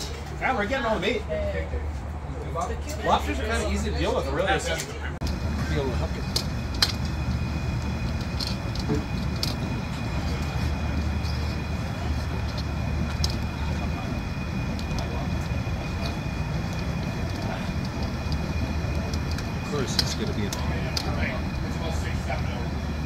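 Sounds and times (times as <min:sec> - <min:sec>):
propane burner roaring: 0:05.2 - 0:23.0.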